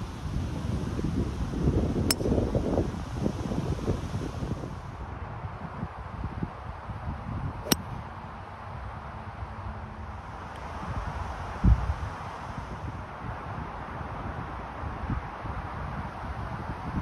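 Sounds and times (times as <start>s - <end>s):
wind on microphone: 0.0s - 8.3s, 10.7s - 17.0s
golf club striking ball: 7.6s - 8.0s.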